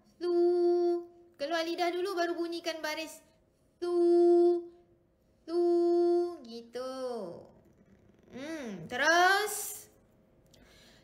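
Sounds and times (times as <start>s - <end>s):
person reciting drawn-out syllable: 5.5s - 6.5s.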